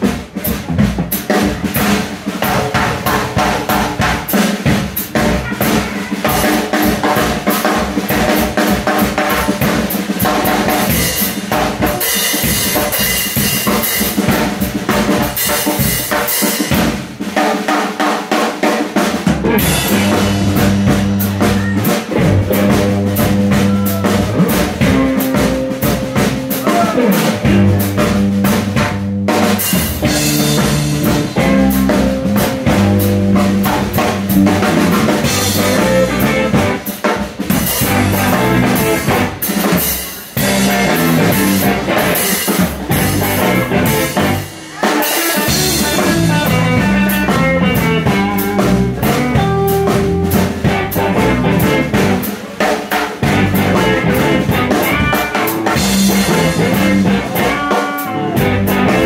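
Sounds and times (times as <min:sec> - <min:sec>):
drum kit played fast: 0:00.0 - 0:59.0
bass line: 0:19.2 - 0:44.6, 0:45.4 - 0:52.4, 0:53.2 - 0:59.0.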